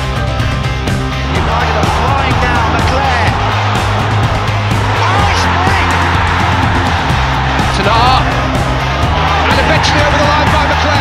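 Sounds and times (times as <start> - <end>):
rock music: 0.0 - 11.0.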